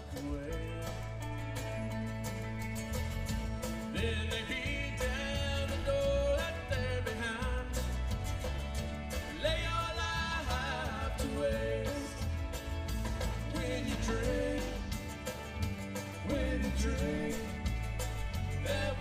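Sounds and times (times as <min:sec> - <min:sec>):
live country band playing: 0:00.0 - 0:19.0.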